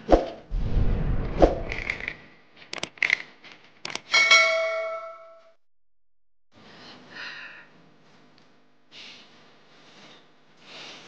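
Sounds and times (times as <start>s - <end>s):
bell-like ring: 4.2s - 5.5s.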